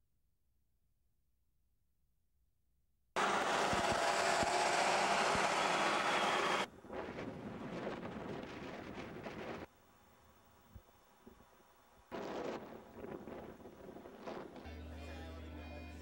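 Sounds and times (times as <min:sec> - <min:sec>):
tyres hissing on highway: 0:03.2 - 0:06.7
quiet outdoor noise: 0:03.2 - 0:16.0.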